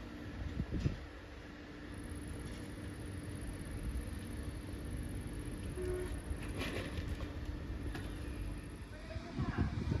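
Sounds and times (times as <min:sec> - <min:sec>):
electric train humming: 0:00.0 - 0:10.0.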